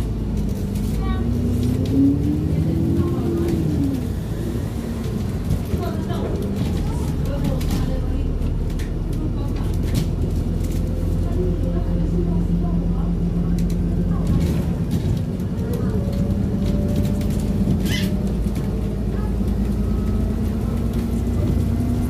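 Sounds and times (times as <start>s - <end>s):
bus engine drone: 0.0s - 22.0s.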